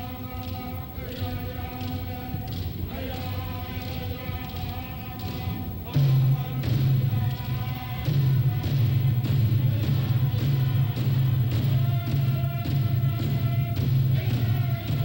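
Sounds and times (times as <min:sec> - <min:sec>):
frame drums beating: 0:00.0 - 0:15.0
group of voices singing: 0:00.0 - 0:15.0.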